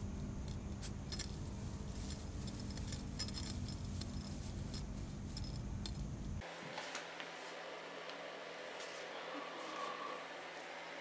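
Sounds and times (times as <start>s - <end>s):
metal collar tag jingling: 0.4s - 6.4s.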